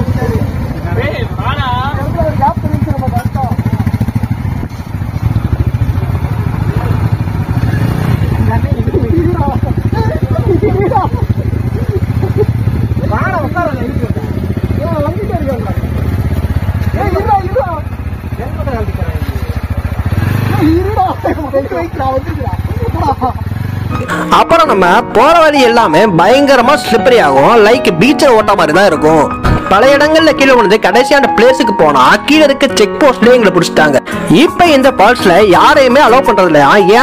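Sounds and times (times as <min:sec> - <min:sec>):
motorcycle engines at low revs: 0:00.0 - 0:24.2
men calling out: 0:20.4 - 0:26.4.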